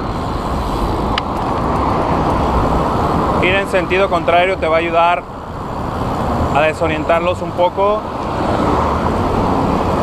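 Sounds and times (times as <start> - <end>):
wind and rolling rumble: 0.0 - 10.0.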